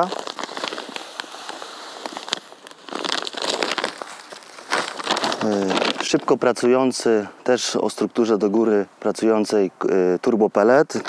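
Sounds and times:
plastic bags crinkling: 0.0s - 6.6s.

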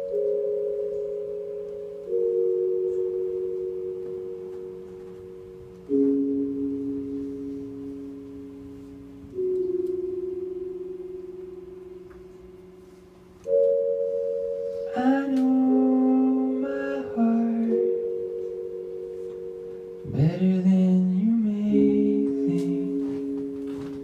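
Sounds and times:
bell-like keyboard chords: 0.0s - 24.0s.

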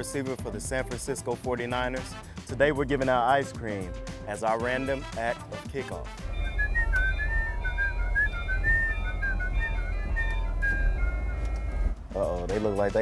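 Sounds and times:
background music: 0.0s - 13.0s
person whistling a tune: 6.2s - 12.0s
steady low rumble: 6.2s - 12.1s.

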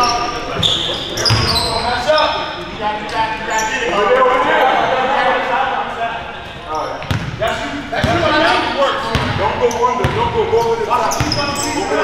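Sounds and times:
sneaker squeaks: 0.0s - 3.9s, 6.6s - 8.3s, 9.0s - 12.0s
players' voices: 0.0s - 12.0s.

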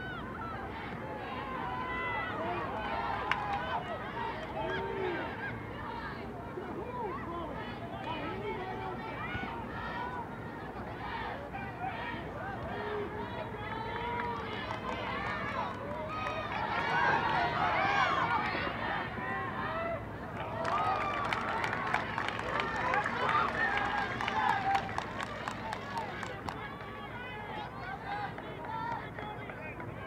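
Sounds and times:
people shouting and calling out: 0.0s - 21.0s.

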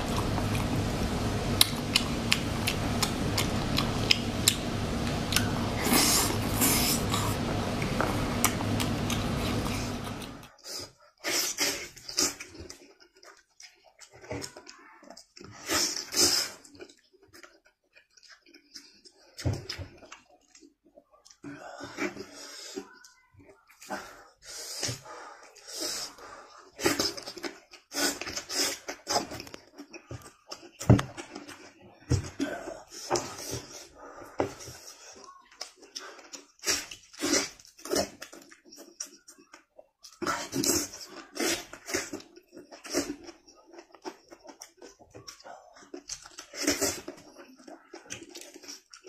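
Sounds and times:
man eating and sucking meat: 0.0s - 49.0s
wet chewing mouth sounds: 0.0s - 49.0s.

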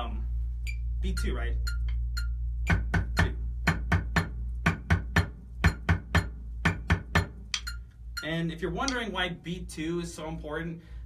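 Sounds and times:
drumstick on practice pad: 1.7s - 9.2s
metronome clicking: 7.2s - 9.1s.

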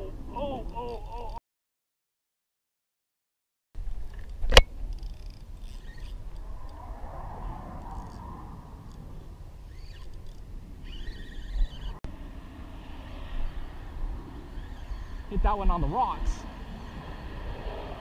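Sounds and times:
fishing reel clicking: 4.1s - 6.8s, 8.0s - 8.2s, 9.6s - 12.0s
wind rumble on microphone: 6.2s - 18.0s.

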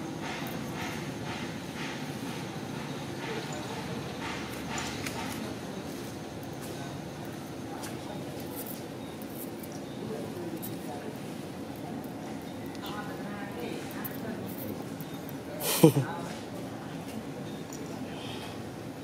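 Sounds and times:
outdoor hubbub: 0.0s - 19.0s
faint background voices: 3.1s - 19.0s.

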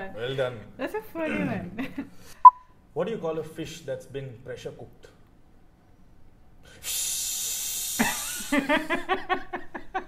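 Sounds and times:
man making long hissing sound: 6.7s - 8.6s
people laughing in bursts: 8.0s - 10.0s.

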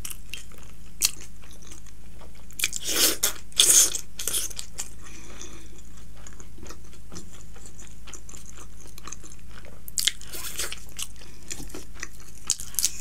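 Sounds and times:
chewing noodles: 0.0s - 13.0s
steady low hum: 0.0s - 13.0s.

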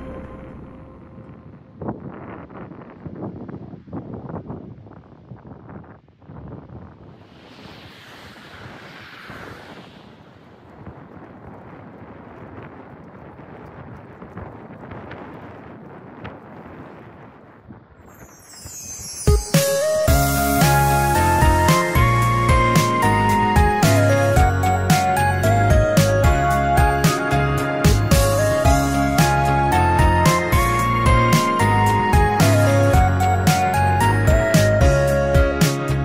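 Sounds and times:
wind buffeting microphone: 0.9s - 19.2s
car passing: 7.0s - 11.9s.

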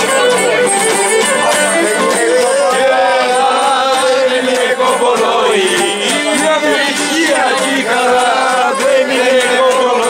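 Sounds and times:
men singing in unison: 1.5s - 10.0s.

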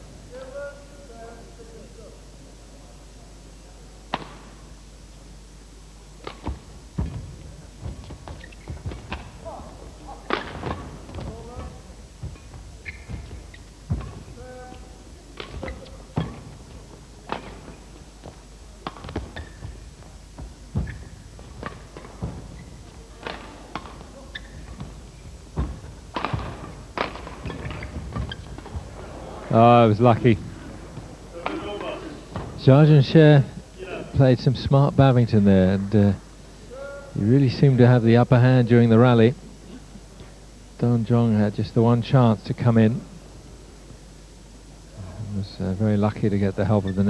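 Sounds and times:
racket hitting shuttlecock: 6.2s - 9.4s, 10.2s - 11.4s
footsteps on court: 6.2s - 32.8s.

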